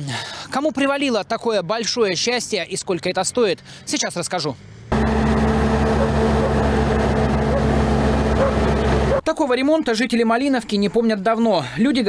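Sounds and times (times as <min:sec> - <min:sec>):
diesel engine droning: 0:04.6 - 0:09.3.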